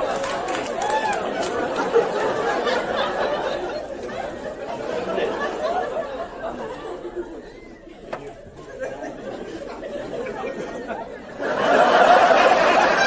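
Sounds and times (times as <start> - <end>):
indistinct chatter: 0.0 - 13.0.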